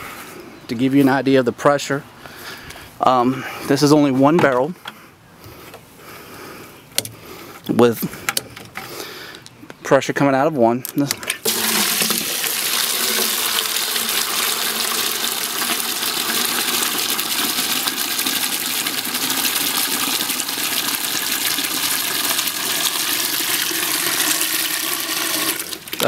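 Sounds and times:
water pouring into plastic bucket: 11.4s - 26.0s.

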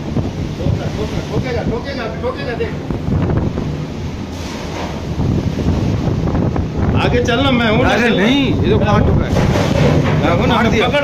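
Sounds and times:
rough sea rushing: 0.0s - 11.0s
wind buffeting microphone: 0.0s - 11.0s.

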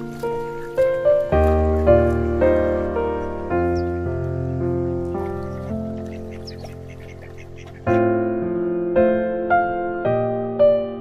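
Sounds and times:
ducks quacking: 0.0s - 8.0s
soft piano music: 0.0s - 11.0s.

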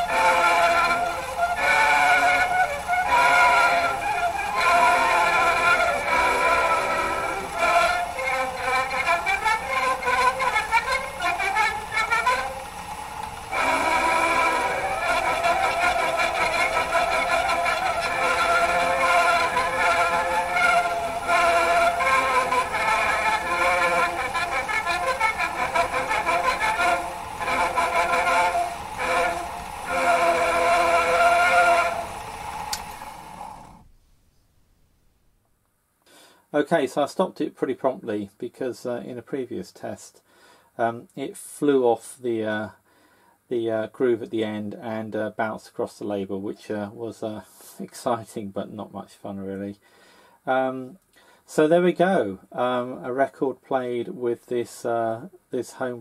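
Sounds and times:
gramophone record music: 0.0s - 42.8s, 50.4s - 56.0s
record surface hiss: 0.0s - 56.0s.

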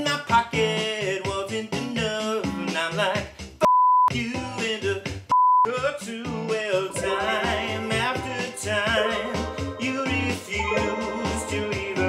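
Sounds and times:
man singing: 0.0s - 3.3s, 4.1s - 12.0s
censor bleeps: 3.6s - 4.1s, 5.3s - 5.7s
electronic accompaniment: 7.0s - 12.0s.

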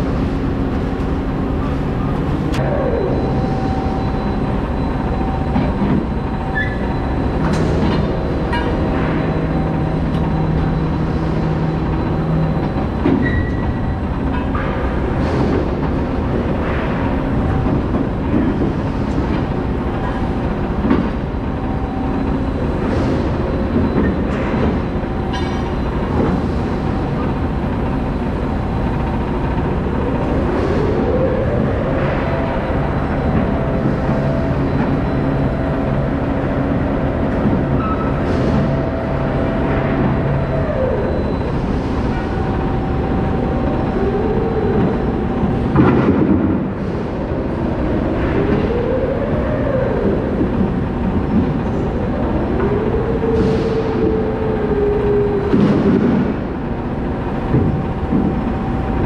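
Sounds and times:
steady machine noise: 0.0s - 59.0s.

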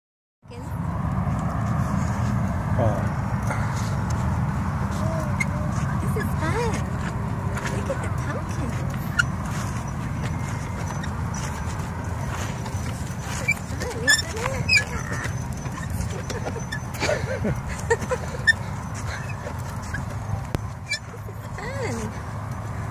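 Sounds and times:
wheelbarrow rolling over dirt path: 5.8s - 22.1s.

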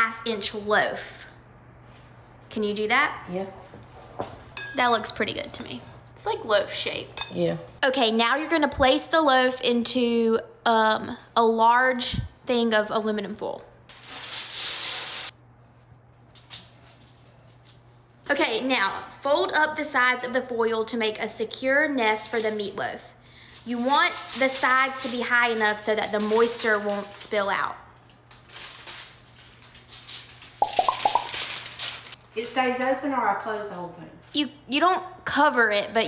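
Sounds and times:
aluminum foil pulled off roll: 13.9s - 15.4s, 23.6s - 27.3s, 28.0s - 32.2s
foil crinkles and taps: 30.4s - 32.2s.

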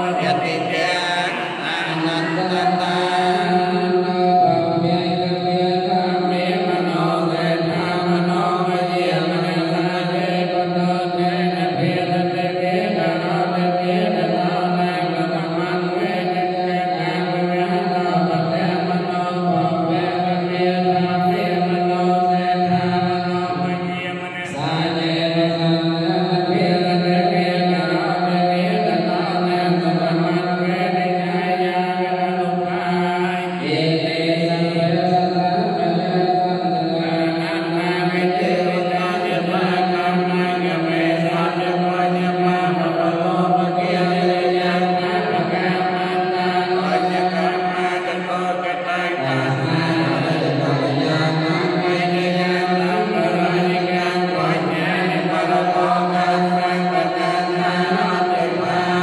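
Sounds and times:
amplified lead voice: 0.0s - 59.0s
monks chanting: 0.0s - 59.0s.

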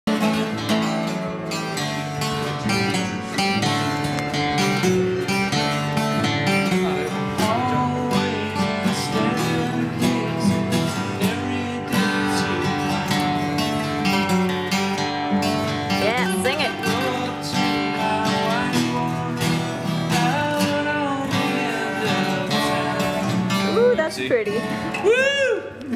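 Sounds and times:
acoustic guitars strumming: 0.1s - 25.9s.

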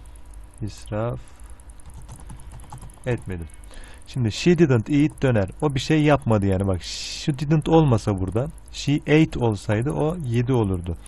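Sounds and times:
computer keyboard clicks: 1.7s - 3.4s, 8.1s - 8.5s.

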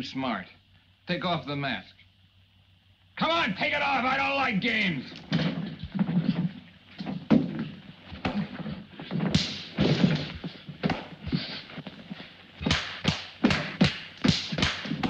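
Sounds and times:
thuds and knocks from blows: 5.2s - 15.0s.

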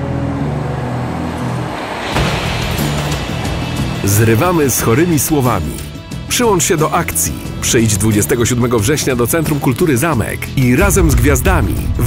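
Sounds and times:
electric tram rolling: 0.0s - 9.6s.

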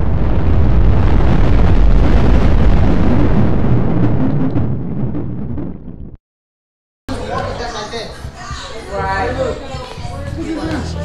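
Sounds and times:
explosion-like bass rumble: 0.0s - 6.2s.

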